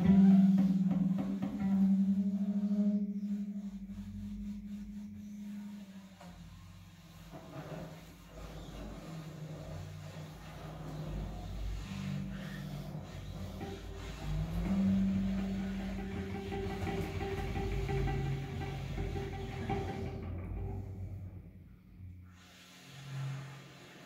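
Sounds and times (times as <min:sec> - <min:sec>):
violin: 0:00.0 - 0:06.5, 0:09.2 - 0:21.5
saxophone: 0:00.0 - 0:06.9
percussion: 0:00.0 - 0:22.3.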